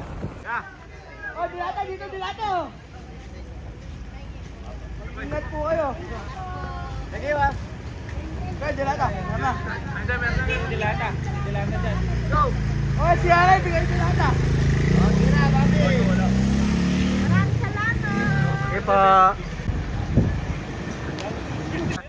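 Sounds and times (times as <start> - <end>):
people's voices: 0.0 - 22.0
vehicle engine running: 2.9 - 22.0.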